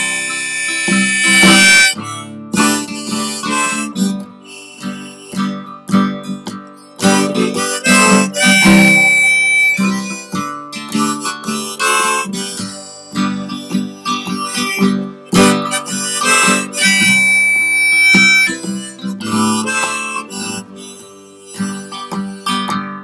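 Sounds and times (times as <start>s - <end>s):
harmonica playing: 0.0s - 23.0s
strummed acoustic guitar: 0.0s - 23.0s.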